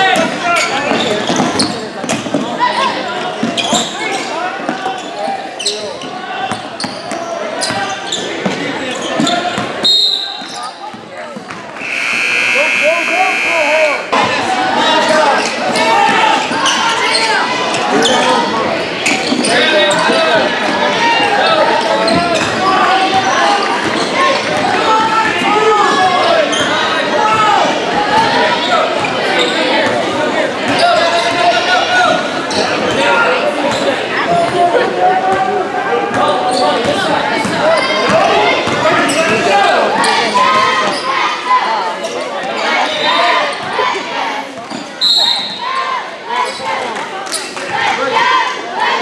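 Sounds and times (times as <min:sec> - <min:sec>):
voices of players and spectators: 0:00.0 - 0:49.0
referee's whistle: 0:09.8 - 0:10.8, 0:11.8 - 0:14.0, 0:45.0 - 0:45.7
scoreboard buzzer: 0:11.8 - 0:14.2.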